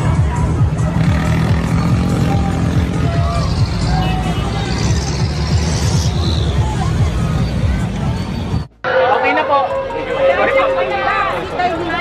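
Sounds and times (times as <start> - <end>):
music: 0.0 - 8.7
crowd voices: 0.0 - 12.0
parade float rumble: 0.0 - 12.0.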